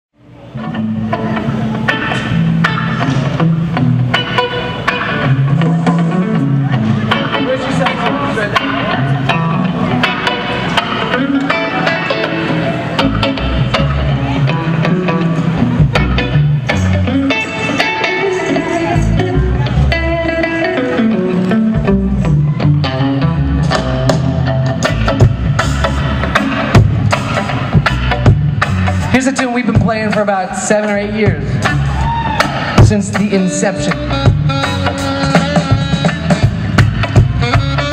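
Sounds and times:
rock band playing: 0:00.2 - 0:37.9.

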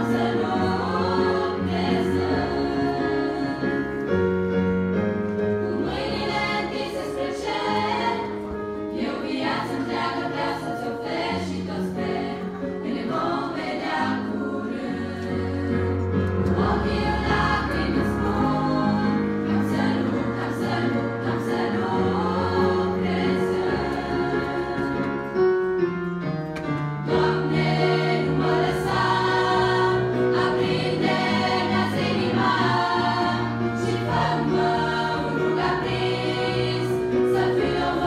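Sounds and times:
girls' choir singing a hymn: 0:00.0 - 0:04.3, 0:05.4 - 0:25.5, 0:27.0 - 0:38.0
keyboard sustained bass notes: 0:12.1 - 0:24.8.

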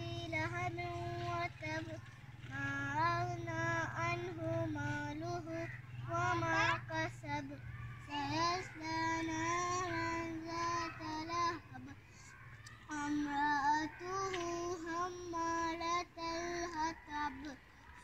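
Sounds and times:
child singing slow melody: 0:00.0 - 0:18.0.

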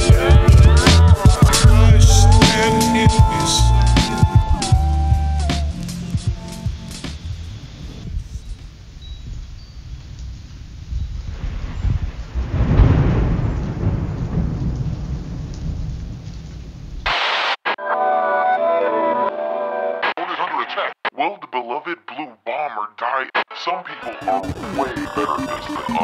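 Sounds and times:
voice sample: 0:00.0 - 0:07.2, 0:17.8 - 0:26.0
rain: 0:05.8 - 0:17.6
rumbling thunder: 0:10.9 - 0:17.1.

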